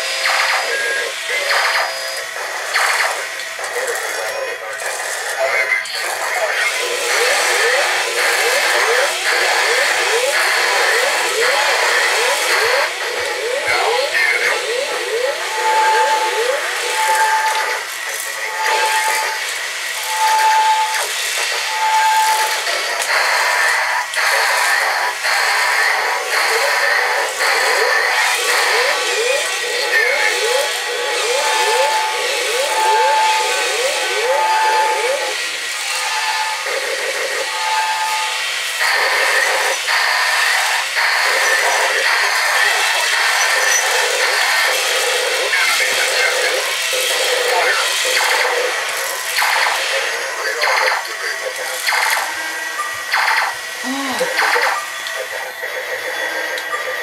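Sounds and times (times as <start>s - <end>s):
robotic voice: 0.2s - 19.4s, 26.0s - 35.4s, 41.3s - 48.6s, 49.9s - 52.5s, 53.8s - 57.0s
laser-like zaps: 0.2s - 33.4s, 38.8s - 52.4s, 53.1s - 55.3s.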